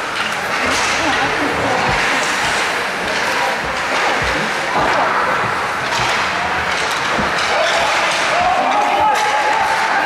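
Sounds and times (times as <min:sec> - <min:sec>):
hockey sticks and puck knocking: 0:00.0 - 0:10.0
skates on ice: 0:00.0 - 0:10.0.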